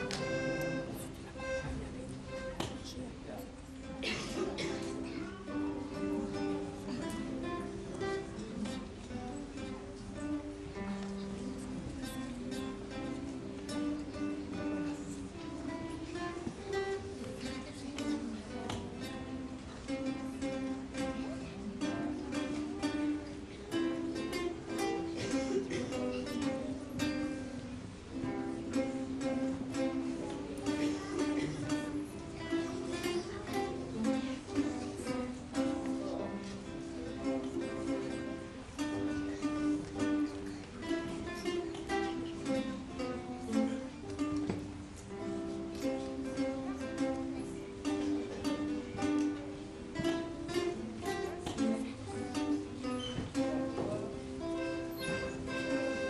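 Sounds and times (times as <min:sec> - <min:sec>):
accordion notes: 0:00.0 - 0:02.5, 0:54.4 - 0:56.0
acoustic guitars playing: 0:00.0 - 0:56.0.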